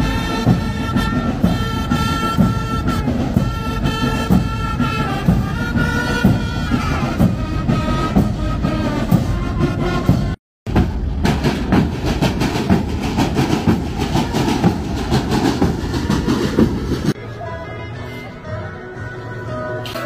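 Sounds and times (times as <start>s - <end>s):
heavy drumming: 0.0s - 17.2s
marching band playing: 0.0s - 17.2s.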